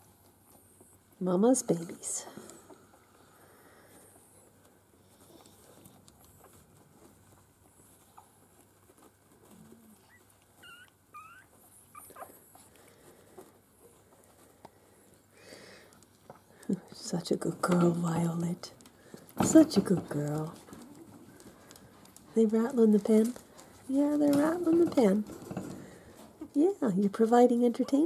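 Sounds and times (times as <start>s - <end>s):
quiet shuffling: 0.0s - 28.0s
puppies squeaking: 9.4s - 12.7s.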